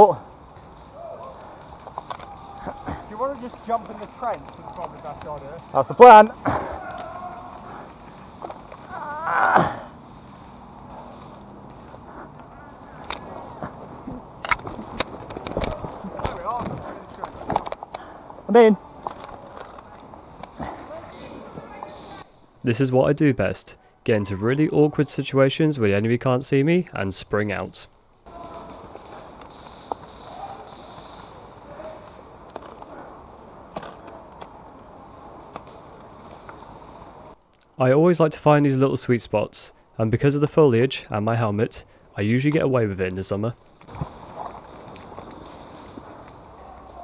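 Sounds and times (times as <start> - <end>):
brushing foliage: 0.0 - 17.5, 43.6 - 47.0
leaves and undergrowth rustling: 0.0 - 23.2, 28.2 - 37.4, 41.9 - 47.0
footsteps: 0.4 - 9.0, 9.9 - 18.0.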